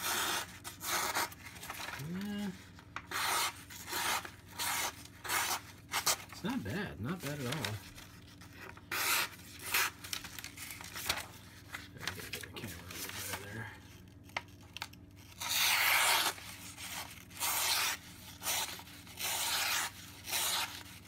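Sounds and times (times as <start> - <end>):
knife slicing through paper: 15.3 - 21.0.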